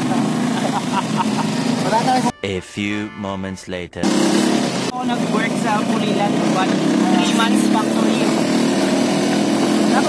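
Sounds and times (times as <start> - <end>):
road noise rushing: 0.0 - 2.3, 4.0 - 10.0
vehicle engine drone: 0.0 - 2.6, 4.0 - 10.0.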